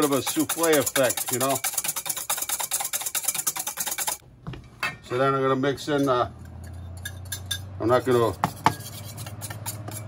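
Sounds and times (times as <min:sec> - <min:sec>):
whisk beating in metal bowl: 0:00.0 - 0:04.2, 0:08.0 - 0:10.0.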